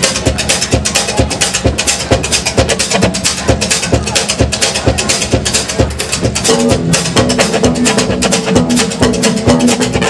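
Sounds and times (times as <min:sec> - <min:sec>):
drum kit beat: 0:00.0 - 0:10.0
live band playing: 0:00.0 - 0:10.0.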